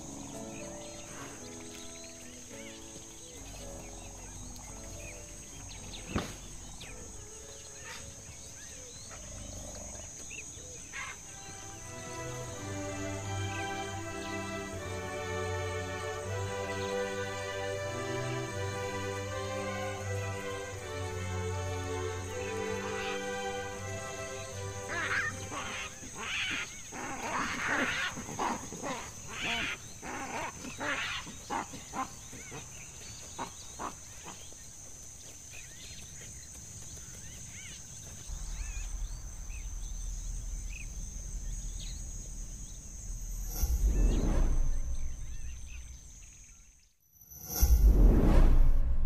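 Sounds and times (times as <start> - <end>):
baboons barking and screaming: 6.9 - 11.6, 22.3 - 34.6
music bed: 10.9 - 26.4
whoosh: 38.3 - 46.4, 47.2 - 49.0.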